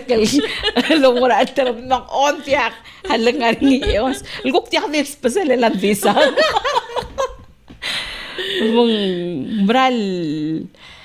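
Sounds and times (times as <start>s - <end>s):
women laughing: 0.0s - 7.5s.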